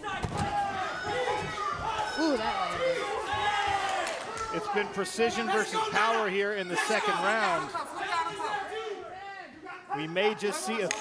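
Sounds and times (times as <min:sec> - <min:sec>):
crowd shouting: 0:00.0 - 0:10.1.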